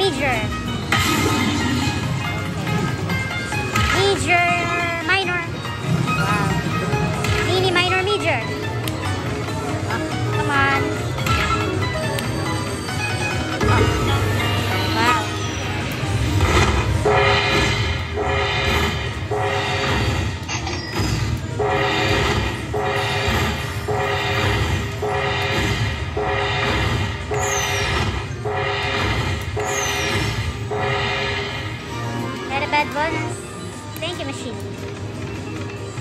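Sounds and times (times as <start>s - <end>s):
low casino hum: 0.0s - 36.0s
slot machine chiming music: 0.0s - 36.0s.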